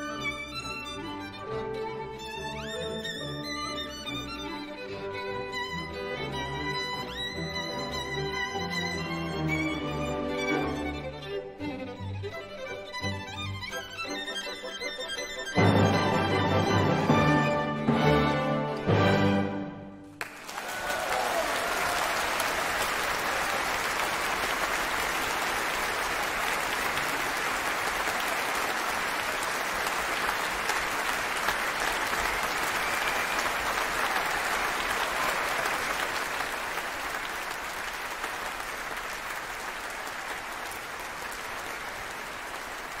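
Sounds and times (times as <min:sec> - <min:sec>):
audience applauding: 0:20.1 - 0:43.0.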